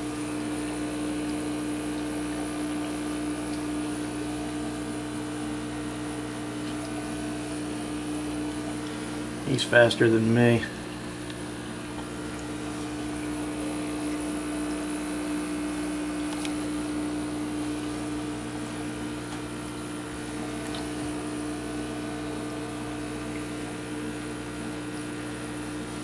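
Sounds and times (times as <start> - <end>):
aquarium pump humming: 0.0 - 26.0
water noise: 10.8 - 16.6.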